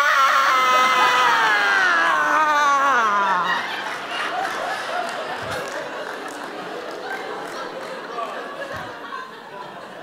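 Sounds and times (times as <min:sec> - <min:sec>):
woman screaming: 0:00.0 - 0:03.6.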